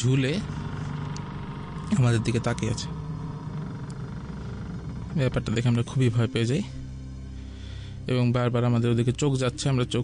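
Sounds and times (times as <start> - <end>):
low background drone: 0.0 - 10.0
man speaking: 1.8 - 3.0, 5.1 - 6.8.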